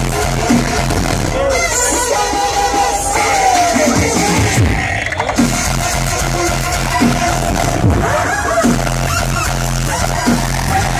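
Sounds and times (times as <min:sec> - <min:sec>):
dubstep over sound system: 0:00.0 - 0:10.9.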